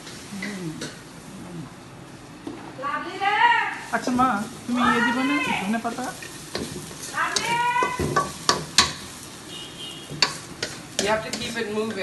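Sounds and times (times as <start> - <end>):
onions sizzling in a wok: 0.0 - 12.0
spatula scraping a pan: 9.9 - 12.0.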